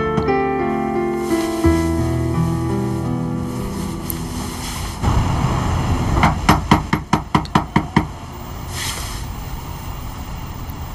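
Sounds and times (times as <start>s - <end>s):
low rumble: 1.6s - 6.6s
rapid knocking on door: 6.2s - 8.1s.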